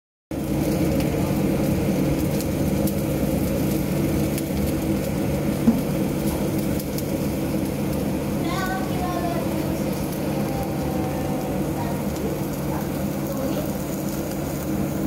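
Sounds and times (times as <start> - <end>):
blowtorch flame hissing: 0.3 - 15.0.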